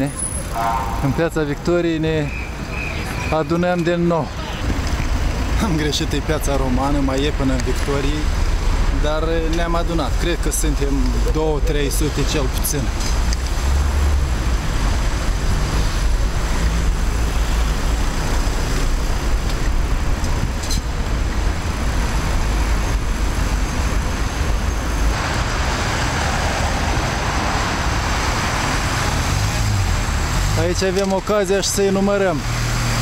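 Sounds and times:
city traffic noise: 0.0 - 33.0
wind rumble on microphone: 14.2 - 25.5.

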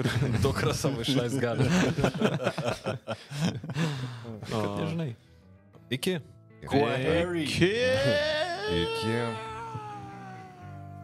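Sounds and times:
low music bed: 0.6 - 11.0
meow-like vocal call: 8.0 - 11.0.

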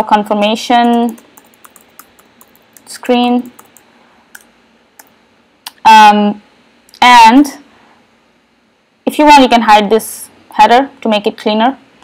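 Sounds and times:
woman speaking: 0.0 - 1.3, 2.8 - 3.6, 5.7 - 6.4, 7.0 - 7.7, 9.1 - 11.8
faint computer clicks: 0.8 - 5.2.

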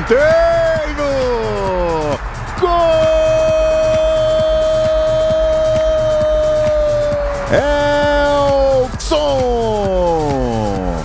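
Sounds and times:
background music with steady beat: 0.0 - 11.0
commentator's drawn-out goal cry: 0.0 - 11.0.

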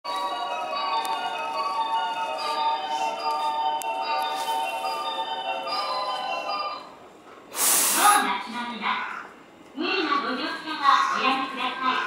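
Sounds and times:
chime tune over speakers: 0.1 - 7.0
burst of hiss: 7.5 - 8.3.

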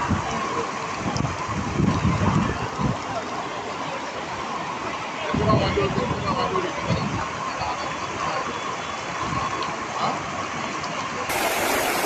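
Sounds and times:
floodwater rushing: 0.0 - 12.0.

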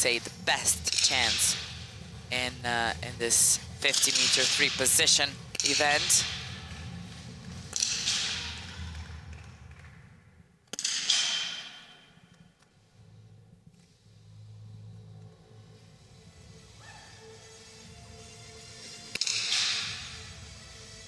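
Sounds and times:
rifle shots ringing in hall: 10.7 - 12.3, 19.1 - 20.2.

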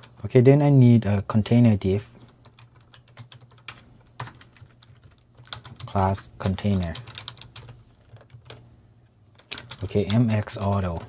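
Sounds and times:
computer keyboard typing: 2.2 - 8.6, 9.3 - 11.0.

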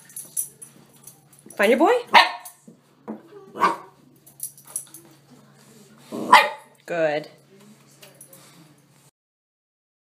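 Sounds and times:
dog yipping: 2.1 - 2.5
small dog barking: 2.1 - 2.5, 3.6 - 3.9, 6.2 - 6.7.

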